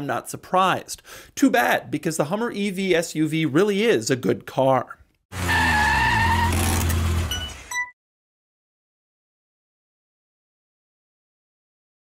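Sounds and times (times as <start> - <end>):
car engine rumble: 5.4 - 7.7.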